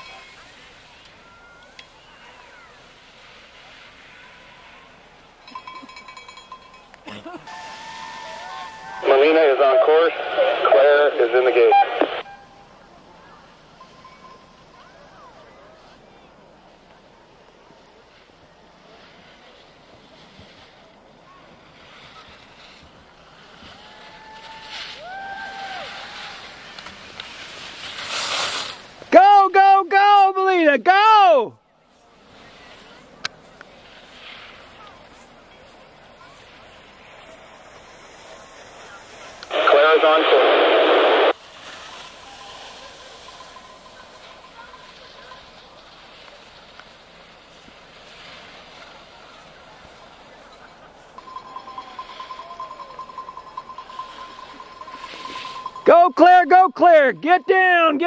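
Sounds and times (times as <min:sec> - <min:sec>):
distant voices: 0:00.0 - 0:29.6, 0:31.5 - 0:58.0
spectators yelling encouragement: 0:07.5 - 0:10.5, 0:23.7 - 0:26.6, 0:29.1 - 0:31.5.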